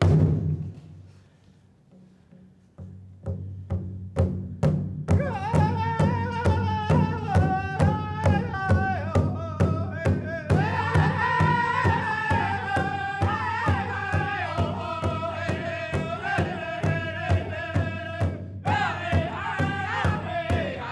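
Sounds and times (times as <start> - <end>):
steady drumbeat: 0.0 - 0.8, 2.8 - 20.9
voices singing together: 5.6 - 20.9
high lead singing voice: 10.4 - 20.9.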